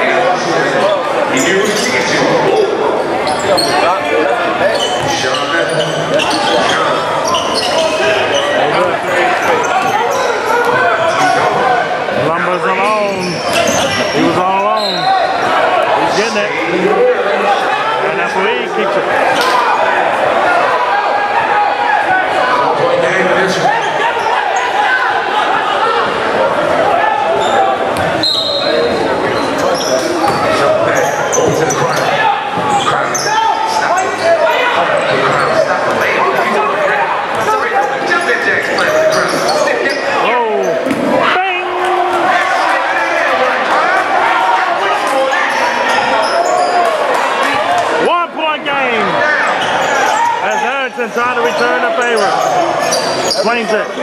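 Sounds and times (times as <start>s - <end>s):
echoing chatter and shouts: 0.0s - 54.0s.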